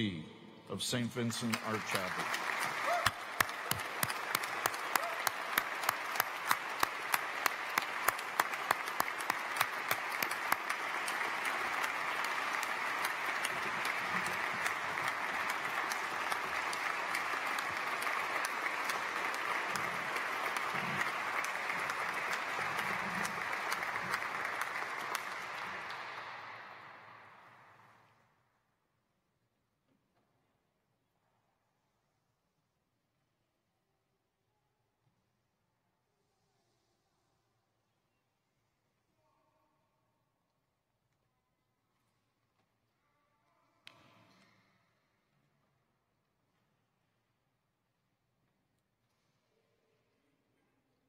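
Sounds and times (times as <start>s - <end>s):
audience applauding: 0.9s - 27.6s
sharp close hand claps: 1.4s - 27.5s.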